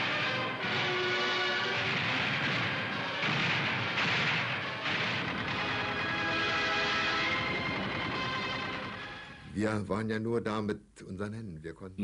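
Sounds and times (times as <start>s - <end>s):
gunfire bursts: 0.0s - 8.8s
newsreel music: 0.0s - 10.0s.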